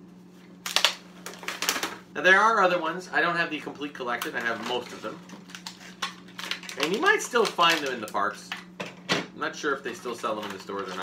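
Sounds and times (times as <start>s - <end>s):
plastic packaging crackling: 0.6s - 2.0s, 4.0s - 8.7s, 10.0s - 11.0s.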